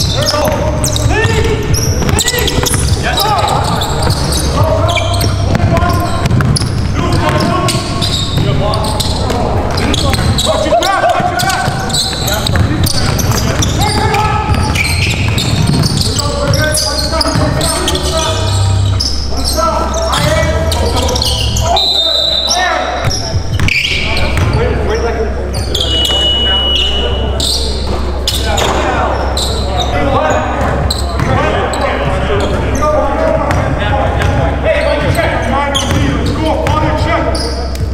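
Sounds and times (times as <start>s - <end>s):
players' voices: 0.0s - 37.9s
ball bouncing on wooden floor: 5.1s - 8.6s, 11.0s - 16.6s.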